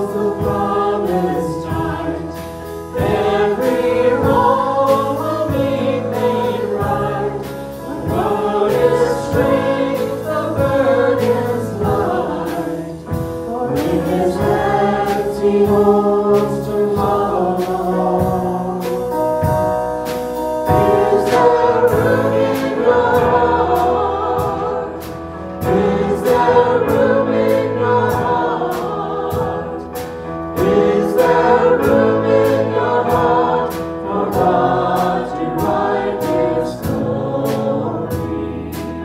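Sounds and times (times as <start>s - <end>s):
group singing a hymn: 0.0s - 39.0s
keyboard: 0.0s - 39.0s.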